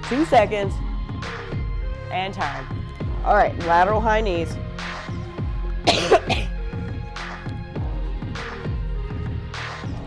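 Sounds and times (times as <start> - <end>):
workout music with steady beat: 0.0 - 10.0
person coughing: 5.9 - 6.6.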